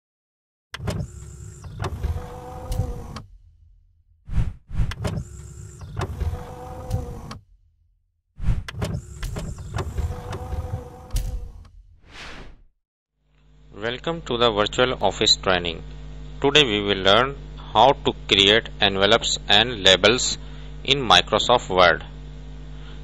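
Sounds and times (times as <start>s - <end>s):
mechanical whirring slide: 0.8s - 7.6s, 8.4s - 12.7s.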